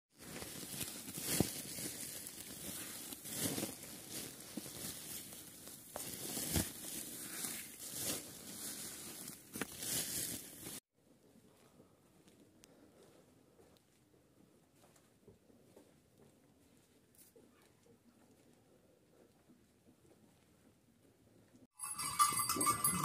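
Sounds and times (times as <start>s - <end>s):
dry hay rustling and crackling: 0.1s - 10.8s.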